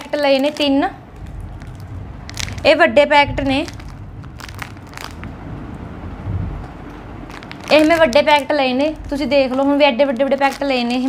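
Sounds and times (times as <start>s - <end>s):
plastic wrapper crinkling: 0.0s - 5.5s, 6.6s - 11.0s.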